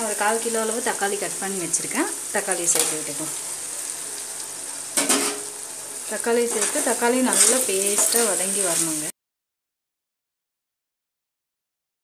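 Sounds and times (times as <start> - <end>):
onions sizzling in oil: 0.0 - 9.2
metal spoon stirring in pot: 6.4 - 8.9.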